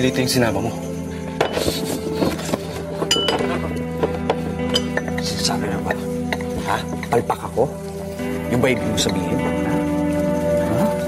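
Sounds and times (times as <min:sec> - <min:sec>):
background music: 0:00.0 - 0:11.0
glass bottle clinking on table: 0:03.0 - 0:03.6, 0:04.3 - 0:05.2.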